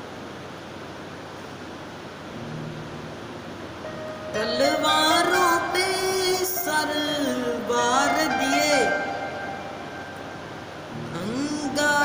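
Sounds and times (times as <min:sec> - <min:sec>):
steady background hiss: 0:00.0 - 0:12.0
boy singing: 0:04.3 - 0:09.4, 0:11.0 - 0:12.0.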